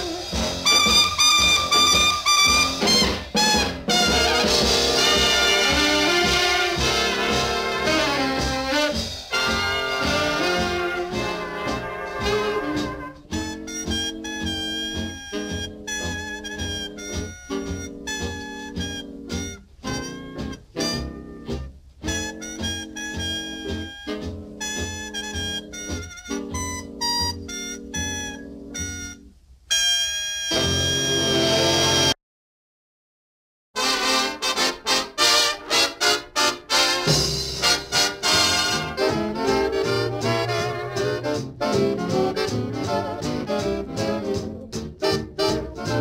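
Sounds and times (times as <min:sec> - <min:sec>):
instrumental background music: 0:00.0 - 0:29.3, 0:33.8 - 0:46.0.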